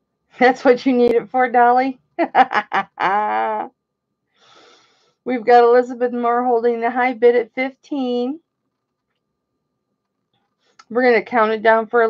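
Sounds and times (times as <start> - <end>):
woman laughing: 2.2 - 3.7.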